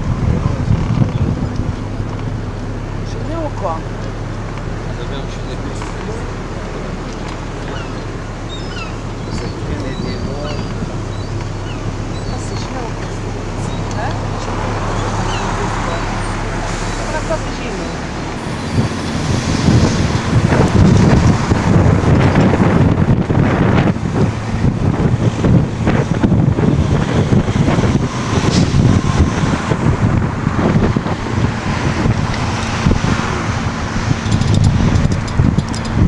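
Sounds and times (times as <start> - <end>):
street traffic: 0.0 - 36.0
vehicle engine hum: 0.0 - 36.0
wind buffeting microphone: 0.0 - 36.0.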